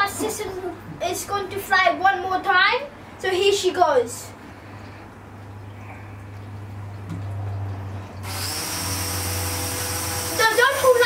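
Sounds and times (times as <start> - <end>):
toy electric motor whirring: 8.2 - 11.0.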